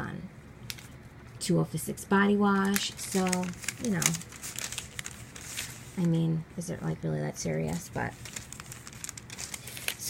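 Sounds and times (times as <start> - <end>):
paper crinkling and rustling: 2.5 - 6.2, 7.6 - 10.0.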